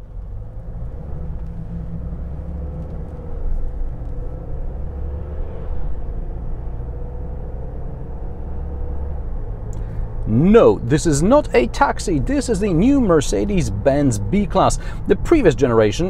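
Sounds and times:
road and wind noise: 0.0 - 16.0.

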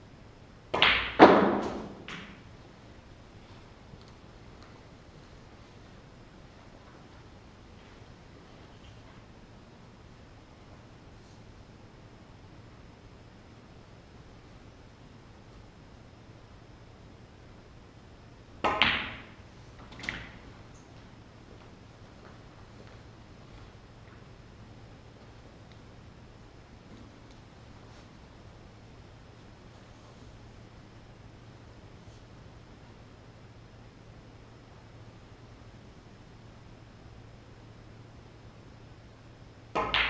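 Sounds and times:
cue striking ball: 0.8 - 2.5, 18.6 - 19.4, 39.7 - 40.0
snooker balls knocking: 0.8 - 2.5, 18.6 - 20.4, 39.7 - 40.0.

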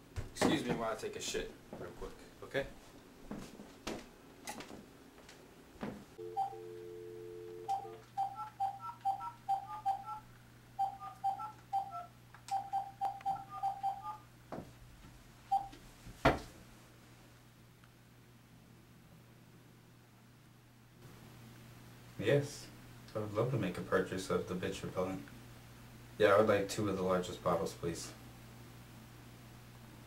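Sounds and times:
phone dial tone: 6.2 - 10.2, 10.8 - 14.2
low hum on phone line: 6.2 - 14.4, 15.4 - 15.8
short keypad beeps: 10.8 - 14.2.

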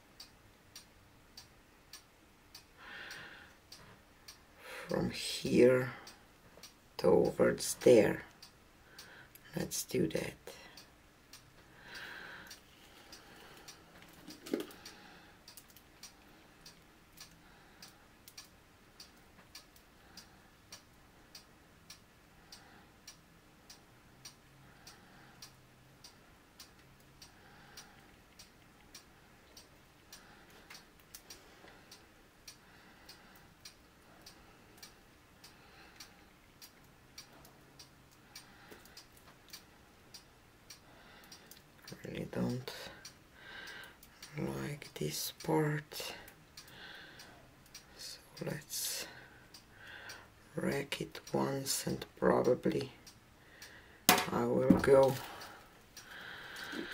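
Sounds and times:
faint steady ticking: 0.0 - 56.9.

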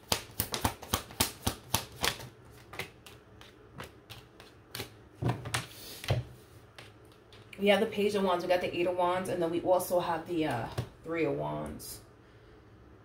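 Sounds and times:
cards being shuffled: 0.0 - 7.5.

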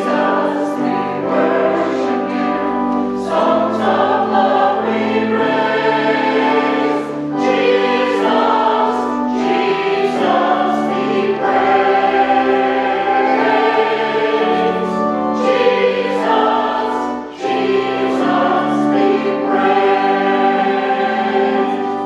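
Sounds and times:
church choir singing in harmony: 0.0 - 22.0.

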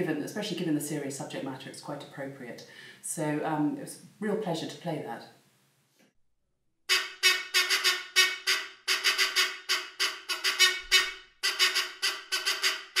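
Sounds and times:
squeeze-bulb horn honks: 6.9 - 13.0.

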